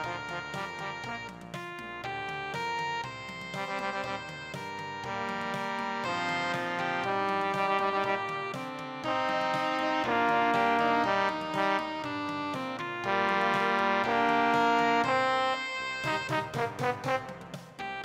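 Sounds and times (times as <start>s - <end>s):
trombone melody: 0.0s - 2.3s, 3.5s - 18.0s
backing music: 0.0s - 18.0s.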